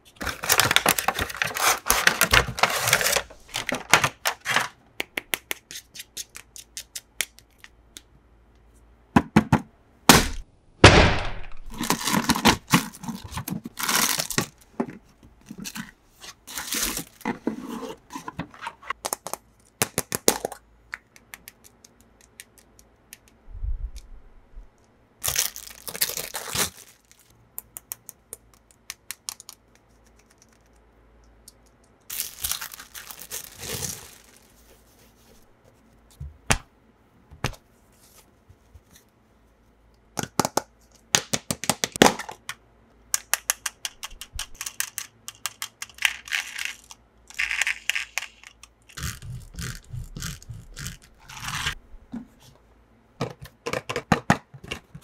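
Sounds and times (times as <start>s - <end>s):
wrapping tearing and crinkling: 0.2s - 4.8s, 11.7s - 14.6s, 25.2s - 27.3s, 32.1s - 34.8s
small sharp clicks and cracks: 19.0s - 23.4s, 27.5s - 32.1s, 40.2s - 49.0s.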